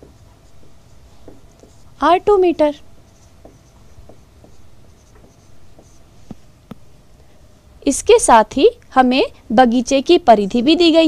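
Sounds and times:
pen scratching on paper: 0:02.6 - 0:06.4.

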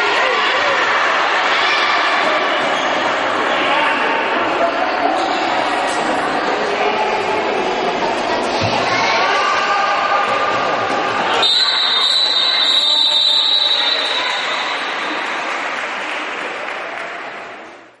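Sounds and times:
voices in echoing sports hall: 0:00.0 - 0:18.0.

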